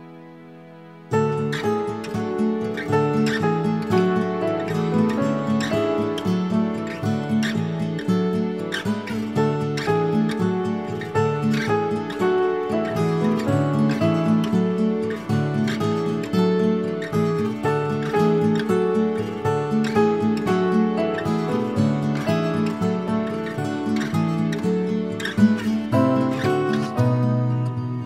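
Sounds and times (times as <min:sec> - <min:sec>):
plucked acoustic guitar: 0:00.0 - 0:28.0.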